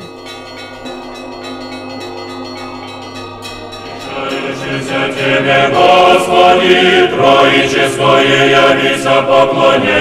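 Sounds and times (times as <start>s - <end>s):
church bells ringing: 0.0s - 8.5s.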